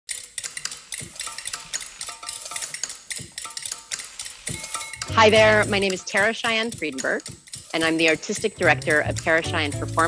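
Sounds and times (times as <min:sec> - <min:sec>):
percussive clicks and clinks: 0:00.1 - 0:10.0.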